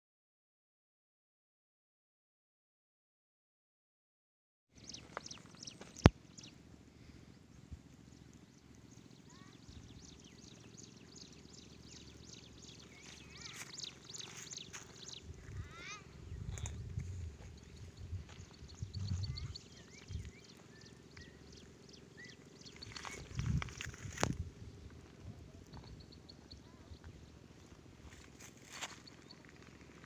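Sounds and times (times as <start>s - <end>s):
wild birds chirping: 4.8s - 30.0s
low rumbles: 6.9s - 30.0s.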